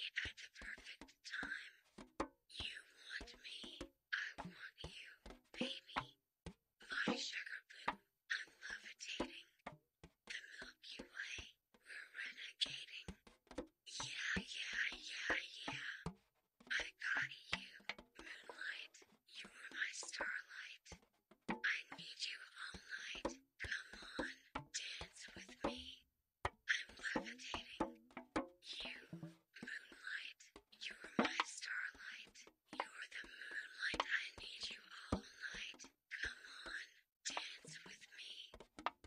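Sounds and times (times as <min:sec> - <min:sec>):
person whispering: 0:00.0 - 0:01.7, 0:02.5 - 0:06.2, 0:06.8 - 0:09.6, 0:10.3 - 0:13.1, 0:13.9 - 0:16.1, 0:16.7 - 0:21.0, 0:21.6 - 0:26.0, 0:26.7 - 0:27.9, 0:28.6 - 0:38.6.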